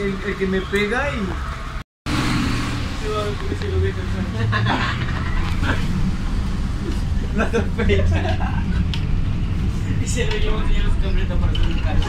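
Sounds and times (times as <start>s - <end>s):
bus engine and road noise: 0.0s - 12.0s.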